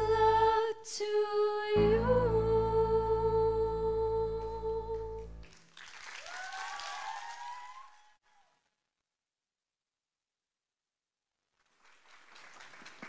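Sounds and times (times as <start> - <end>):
woman singing long note: 0.0 - 5.2.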